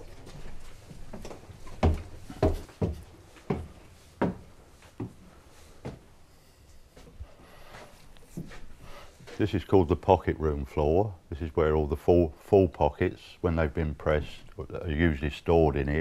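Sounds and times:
footsteps on wooden stairs: 0.0 - 6.2, 7.0 - 9.5.

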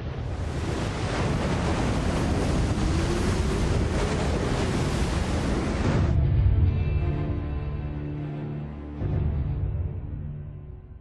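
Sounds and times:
rushing storm water: 0.0 - 8.4
wind: 0.0 - 10.9.

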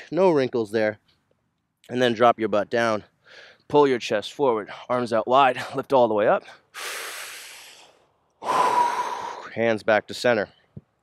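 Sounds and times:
man breathing into microphone: 6.6 - 9.5
whistling breath: 8.4 - 9.5.

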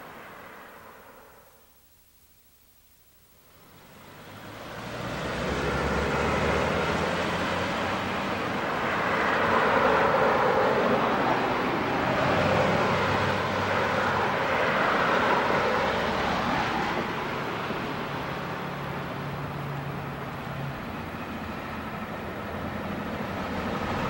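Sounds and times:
rumbling vehicle hum: 3.9 - 24.0.

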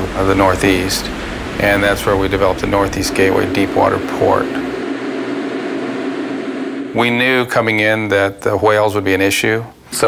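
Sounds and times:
machinery hiss: 0.0 - 7.7
faint low hum: 0.0 - 8.4.

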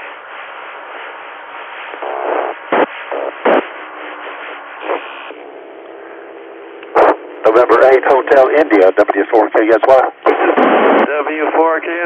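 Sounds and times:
radio static hiss: 0.0 - 12.0
radio station audio: 0.8 - 12.0
short radio pops: 1.9 - 5.9, 6.8 - 8.2, 9.8 - 11.6
garbled radio signals: 1.9 - 12.0
brief radio tones: 6.9 - 8.2.

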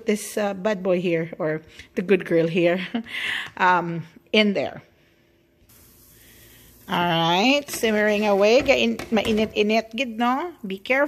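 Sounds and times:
soup boiling with steady hiss: 5.2 - 11.0.

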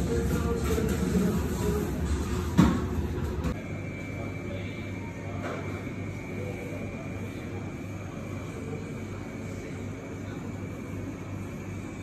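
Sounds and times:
low machinery hum: 0.0 - 12.0.

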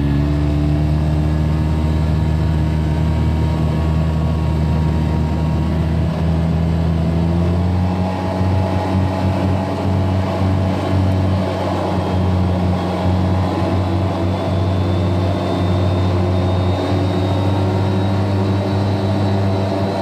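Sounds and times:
vehicle engine droning: 0.0 - 20.0
faint high whine: 11.4 - 20.0.

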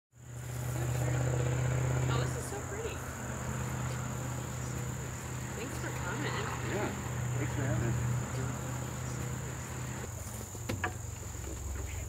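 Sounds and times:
high-pitched insect trill: 0.2 - 12.0
faint distant voices: 0.7 - 12.0.

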